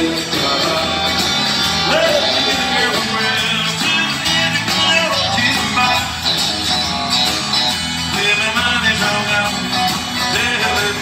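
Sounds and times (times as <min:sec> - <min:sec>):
bass guitar: 0:00.0 - 0:11.0
country band playing: 0:00.0 - 0:11.0
electric guitar: 0:00.0 - 0:11.0
strummed acoustic guitar: 0:00.0 - 0:11.0.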